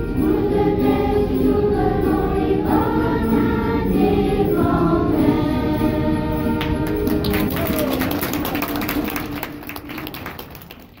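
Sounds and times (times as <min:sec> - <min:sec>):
children's choir singing: 0:00.0 - 0:09.9
audience clapping: 0:06.6 - 0:11.0.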